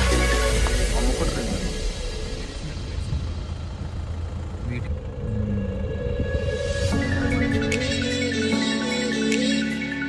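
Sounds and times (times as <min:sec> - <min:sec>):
car rumbling slowly: 0:00.0 - 0:09.2.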